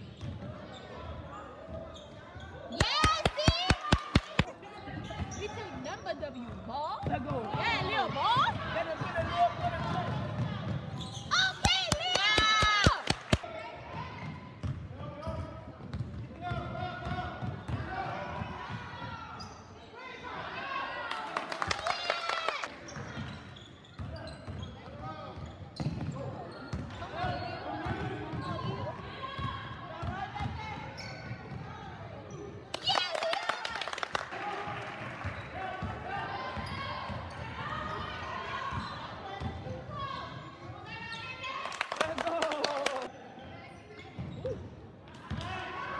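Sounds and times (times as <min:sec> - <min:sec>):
sneakers squeaking on court: 0:00.0 - 0:03.6, 0:04.8 - 0:11.6, 0:19.3 - 0:19.9, 0:22.8 - 0:31.6, 0:36.6 - 0:41.5, 0:43.7 - 0:44.7
spectators' voices: 0:02.7 - 0:14.3.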